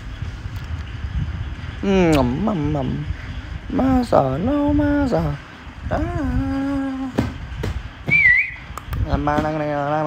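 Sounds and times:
high whistled note: 0:08.1 - 0:08.7.

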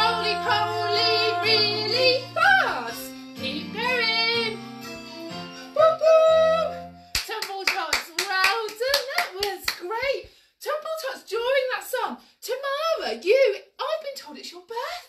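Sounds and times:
children's song with singing: 0:00.0 - 0:04.6, 0:05.6 - 0:06.9
woman clapping hands: 0:07.1 - 0:09.8
woman talking: 0:07.2 - 0:15.0.

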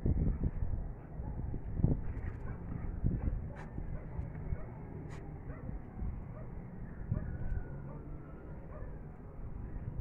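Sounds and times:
wind rumble on microphone: 0:00.0 - 0:10.0
dog barking: 0:05.5 - 0:05.7, 0:08.7 - 0:09.0.

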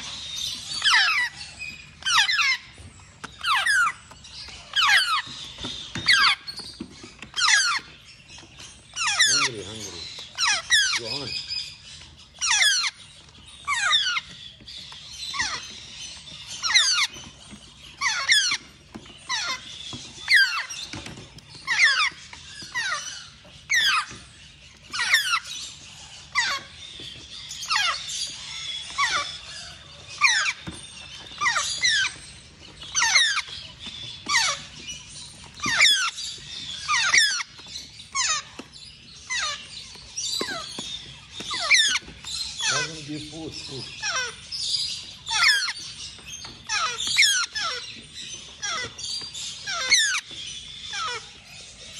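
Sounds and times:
parrot chicks squealing: 0:00.0 - 0:51.9.

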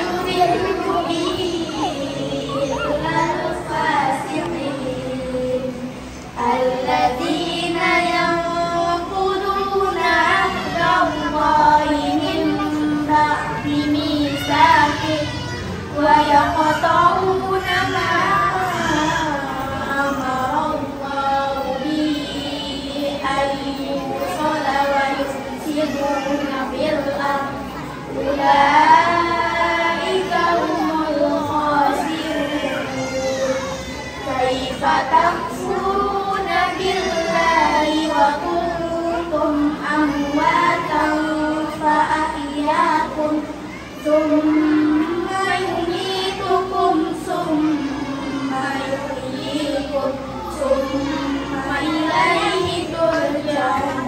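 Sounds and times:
girl singing into microphone: 0:00.0 - 0:54.0.

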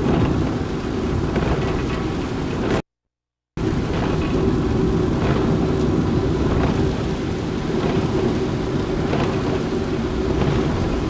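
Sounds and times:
car rumbling on wet road: 0:00.0 - 0:02.8, 0:03.6 - 0:11.0
rain on car: 0:00.0 - 0:02.8, 0:03.6 - 0:11.0.

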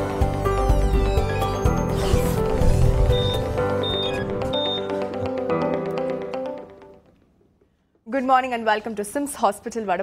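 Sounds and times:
tv theme music: 0:00.0 - 0:07.1.

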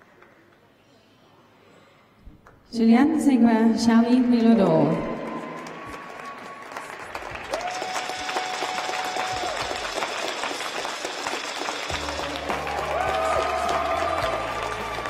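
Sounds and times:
audience applauding: 0:04.2 - 0:15.0
music over sound system: 0:11.4 - 0:15.0.

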